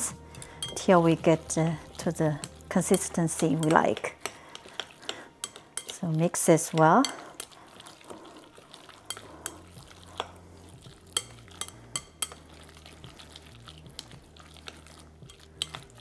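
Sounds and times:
chopsticks stirring filling: 0.0 - 16.0.

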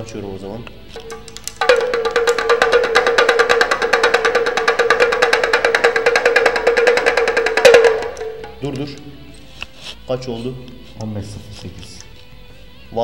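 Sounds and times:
small stringed instrument fast strumming: 1.0 - 9.1.

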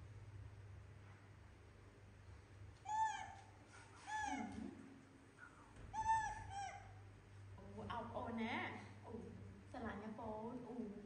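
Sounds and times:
baby monkey coo calls: 2.8 - 4.8, 5.9 - 7.1.

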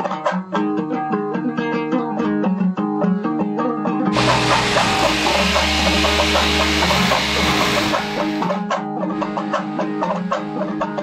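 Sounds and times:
plucked-string background music: 0.0 - 7.6, 8.2 - 11.0
electric drill boring into wall: 4.1 - 8.6.

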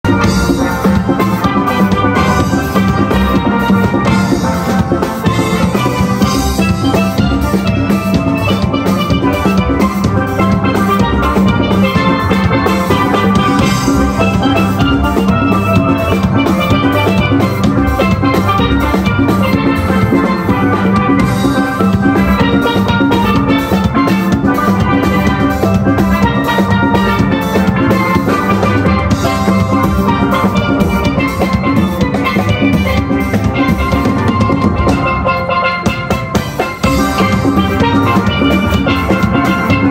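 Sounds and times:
steady drum beat: 0.0 - 39.9
steel pans playing: 0.0 - 39.9.

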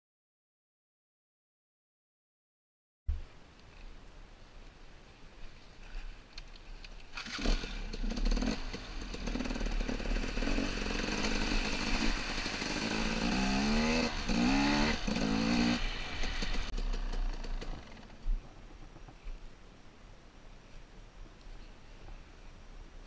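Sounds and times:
dirt bike engine revving: 7.2 - 18.1.

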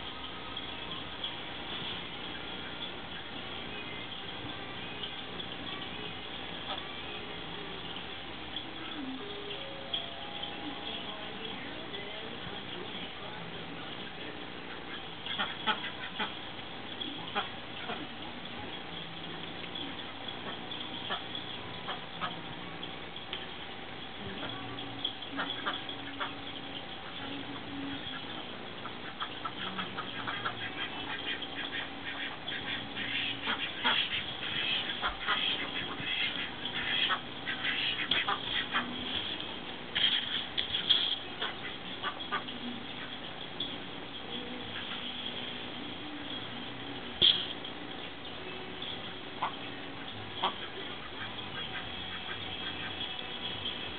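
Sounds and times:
ducks quacking: 2.2 - 7.1, 13.9 - 18.8, 19.6 - 22.9, 24.3 - 43.3, 44.4 - 45.6, 48.8 - 53.9.

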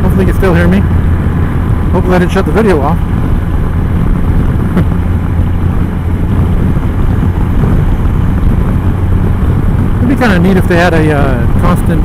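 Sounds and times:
motorcycle engine drone: 0.0 - 12.0
wind rush: 0.0 - 12.0.

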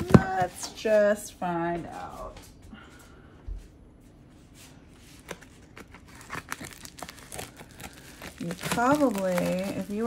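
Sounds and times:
plastic bubble mailer crinkling: 5.2 - 10.0.

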